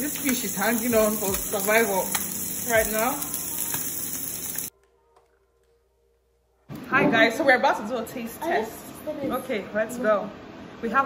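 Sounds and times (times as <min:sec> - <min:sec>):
fish sizzling in oil: 0:00.0 - 0:04.7.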